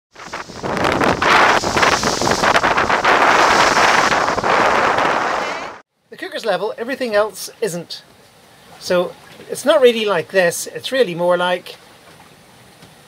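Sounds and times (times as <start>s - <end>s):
wind buffeting microphone: 0.1s - 5.8s.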